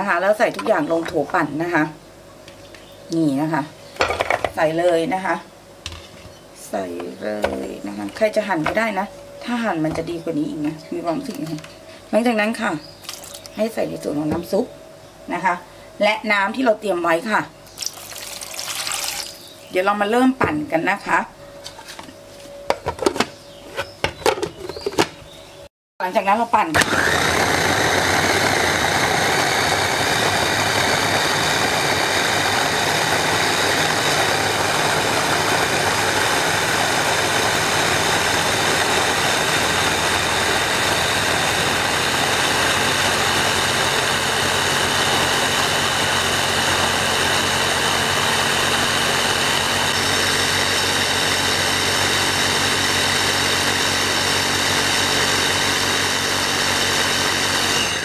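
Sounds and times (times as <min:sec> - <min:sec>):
electric chopper motor blending: 0:26.7 - 0:58.0.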